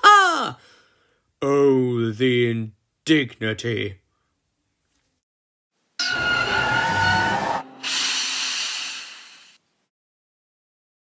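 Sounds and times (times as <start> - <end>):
steam whistle high tones: 6.0 - 9.6
steam hissing: 7.3 - 9.6.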